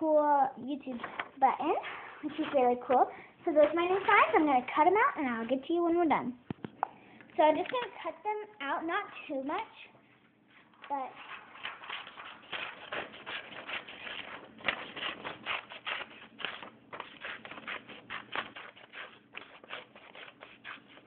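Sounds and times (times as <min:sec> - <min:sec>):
paper rustling: 0:00.9 - 0:05.6, 0:10.6 - 0:21.0
scissors snipping paper: 0:10.8 - 0:21.0.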